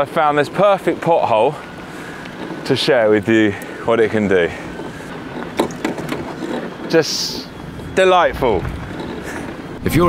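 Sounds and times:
bike tyres rolling: 0.0 - 10.0
bike suspension knocks and rattles: 4.6 - 7.0, 8.4 - 9.6.

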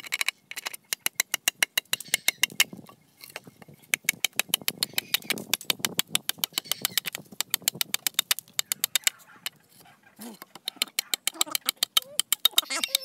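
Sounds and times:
machete chopping bamboo: 3.9 - 9.2, 10.5 - 13.0.

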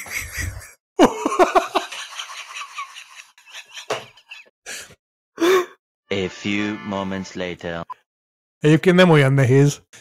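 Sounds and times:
breathy gasps and sighs: 4.6 - 5.8.

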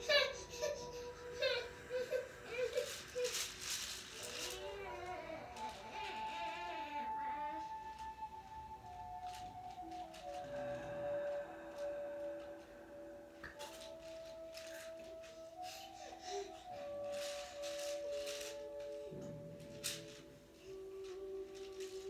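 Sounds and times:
soft slow melody: 0.0 - 22.0.

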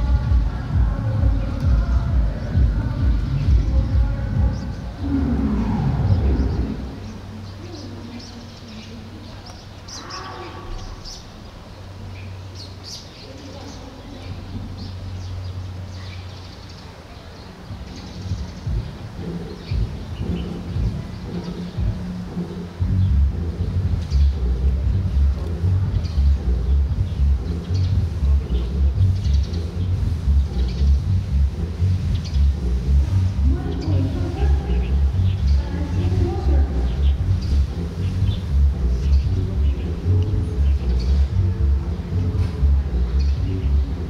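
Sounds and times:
wind buffeting microphone: 0.0 - 12.3, 17.2 - 44.0.

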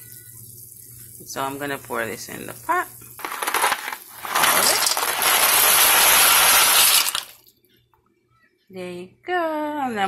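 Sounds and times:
dry pasta pouring into a pot: 3.2 - 7.4.

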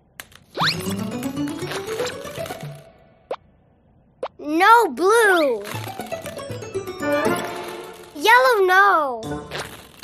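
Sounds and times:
cartoon background music: 0.5 - 3.4, 5.6 - 10.0.

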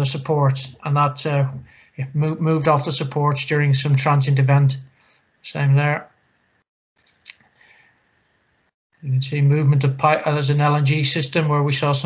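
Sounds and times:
low microphone noise: 9.0 - 12.0.

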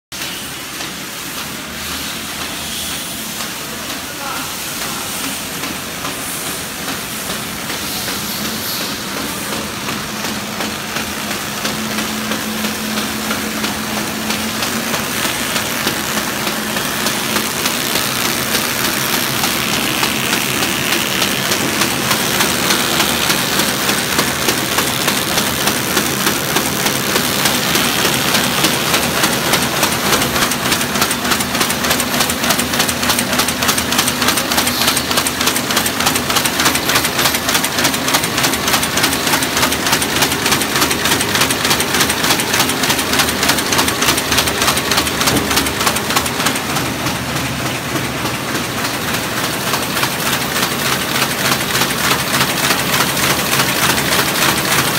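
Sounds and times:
machine mechanical clatter: 5.5 - 54.9.

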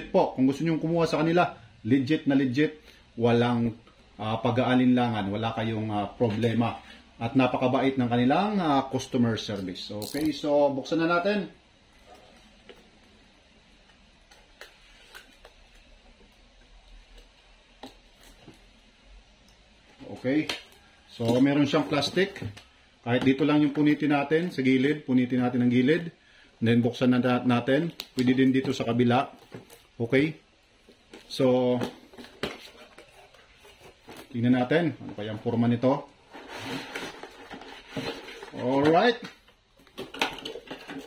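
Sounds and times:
low room hum: 0.0 - 41.0.

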